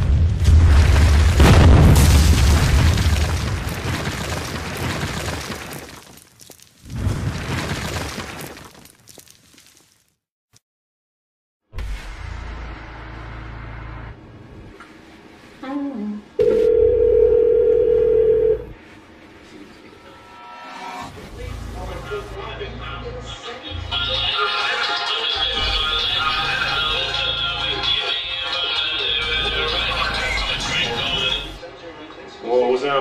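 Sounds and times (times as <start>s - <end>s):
wall bursting crash: 0.0s - 6.0s
steady telephone tone: 16.4s - 18.8s.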